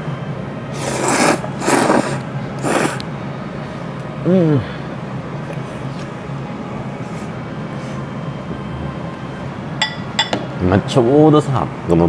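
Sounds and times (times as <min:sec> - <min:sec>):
slurping noodles: 0:00.7 - 0:03.1.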